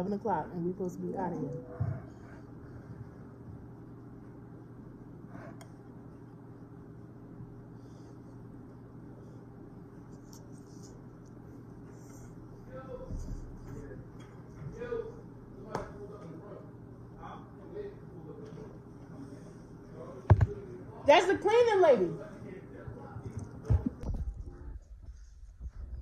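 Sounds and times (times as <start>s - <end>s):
low indoor hum: 0.0s - 26.0s.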